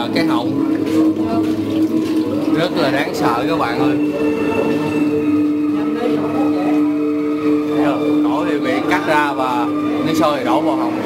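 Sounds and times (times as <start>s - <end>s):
steady droning hum: 0.0s - 11.0s.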